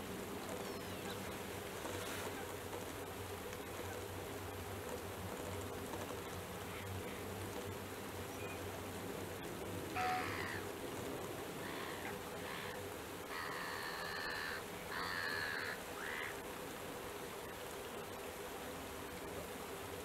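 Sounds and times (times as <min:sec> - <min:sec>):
rain hissing: 0:00.0 - 0:20.0
crow cawing: 0:10.0 - 0:10.7, 0:11.6 - 0:16.4.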